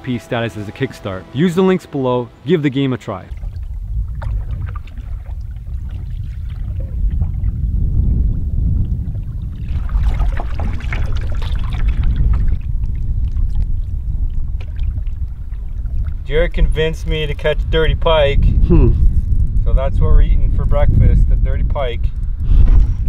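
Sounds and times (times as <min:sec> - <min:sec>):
water lapping at hull: 0:03.0 - 0:17.2
wind rumble on microphone: 0:03.2 - 0:23.0
canoe paddle strokes: 0:03.3 - 0:07.6, 0:09.0 - 0:16.3.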